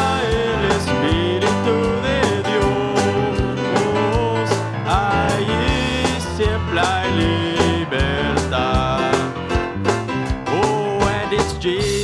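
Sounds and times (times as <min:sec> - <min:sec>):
congregation singing: 0:00.0 - 0:04.2
lead singer singing: 0:00.0 - 0:09.5, 0:10.5 - 0:12.0
worship band playing: 0:00.0 - 0:12.0.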